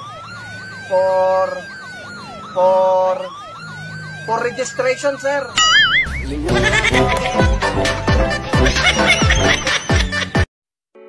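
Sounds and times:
siren rising and falling: 0:00.0 - 0:10.0.

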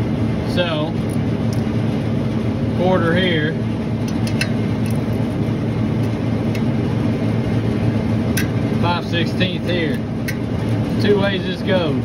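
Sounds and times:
compressor humming: 0:00.0 - 0:12.0.

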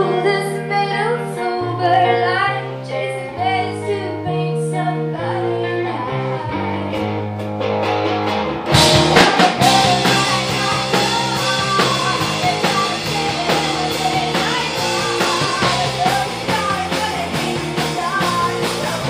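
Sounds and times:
woman singing: 0:00.0 - 0:07.2, 0:09.1 - 0:19.0
electric guitar: 0:00.0 - 0:19.0
rock band with drums: 0:00.0 - 0:19.0.

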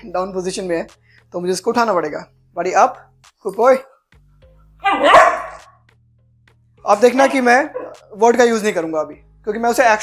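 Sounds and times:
puppy barking: 0:04.8 - 0:05.8, 0:07.6 - 0:08.1.

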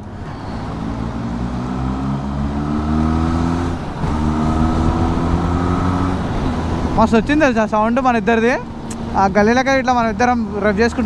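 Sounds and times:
motorcycle engine accelerating: 0:00.0 - 0:07.3
wind rush: 0:00.0 - 0:07.8.

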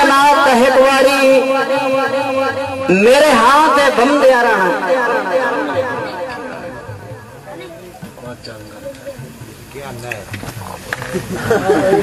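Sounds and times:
background chatter: 0:01.6 - 0:12.0.

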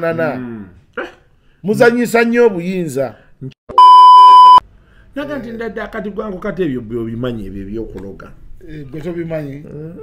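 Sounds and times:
censor bleep: 0:03.7 - 0:04.6.

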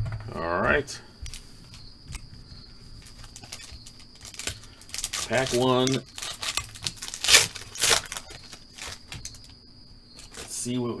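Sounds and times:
foil card packs rustling: 0:01.2 - 0:09.6, 0:10.2 - 0:10.8.

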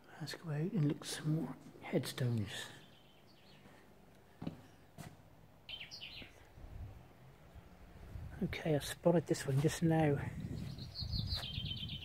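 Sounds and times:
faint bird chirps: 0:05.7 - 0:06.5, 0:10.4 - 0:12.0.

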